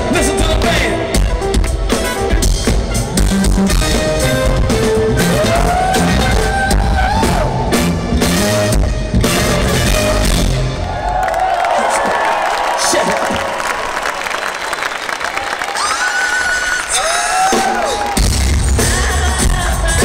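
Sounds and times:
live funk band playing: 0.0s - 11.0s, 16.9s - 20.0s
crowd noise: 0.0s - 20.0s.

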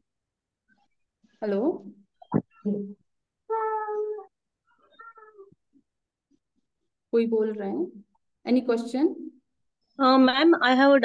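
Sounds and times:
cat meowing: 3.5s - 5.6s.

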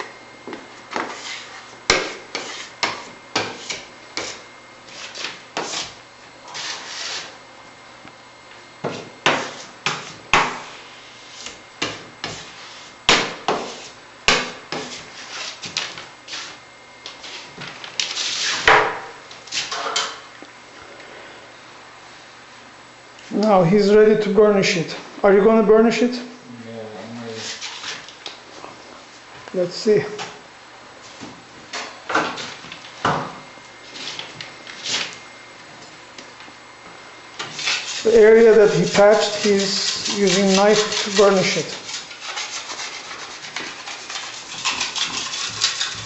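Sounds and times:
sandpaper scraping a wall: 0.9s - 7.4s, 9.3s - 14.0s, 14.7s - 18.7s, 27.4s - 28.1s, 33.8s - 35.2s, 37.4s - 46.0s.

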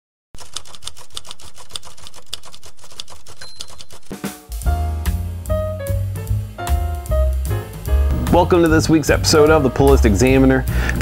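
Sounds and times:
typewriter key strikes: 0.4s - 4.3s.

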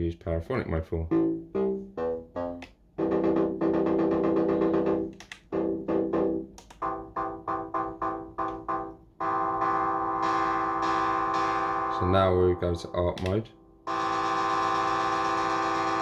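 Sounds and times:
synthesizer playing chords: 1.1s - 16.0s.

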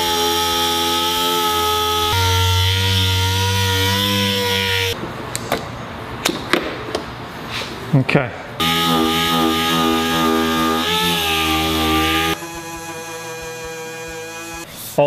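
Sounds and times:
sander running: 0.0s - 5.0s, 8.6s - 14.7s
rubbing: 8.6s - 14.9s.

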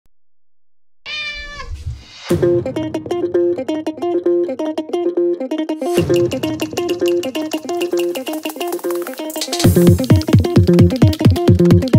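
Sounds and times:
cat meowing: 1.1s - 1.8s.

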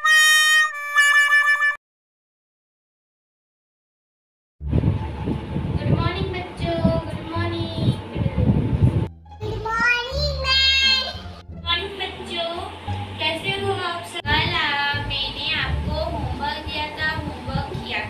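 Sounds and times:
low steady hum: 4.6s - 18.0s.

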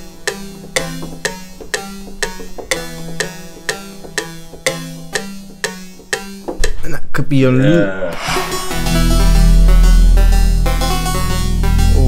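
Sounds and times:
plucked synth arpeggio: 0.0s - 6.6s, 8.3s - 12.0s
low held synth notes: 7.5s - 12.0s.

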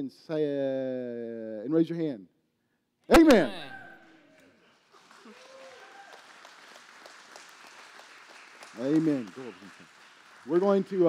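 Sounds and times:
man speaking: 3.1s - 4.0s
crowd applauding: 4.3s - 11.0s.

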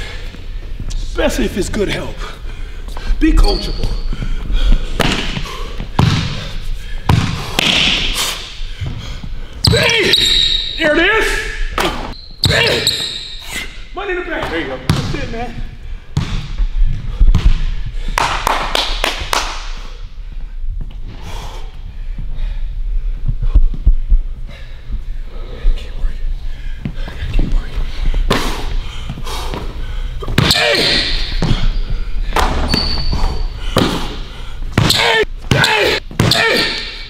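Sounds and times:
basketball bouncing on hardwood court: 5.0s - 6.5s, 7.1s - 8.1s, 14.8s - 15.4s, 16.2s - 17.7s, 30.2s - 31.7s.

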